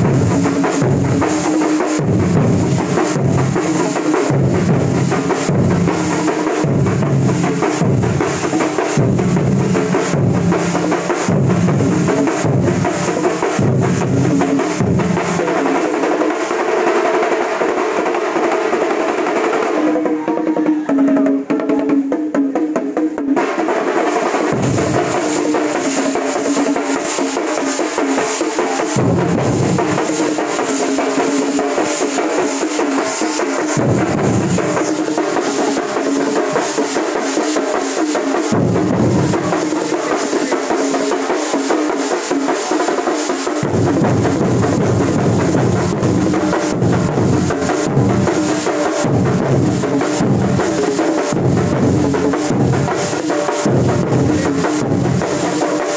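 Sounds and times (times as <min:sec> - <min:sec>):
stick-beaten drums playing fast: 0:00.0 - 0:55.9
deep low-pitched drum pulse: 0:33.8 - 0:34.9.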